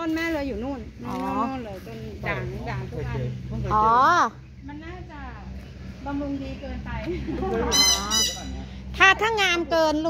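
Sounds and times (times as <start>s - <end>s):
goose honking: 7.6s - 8.7s.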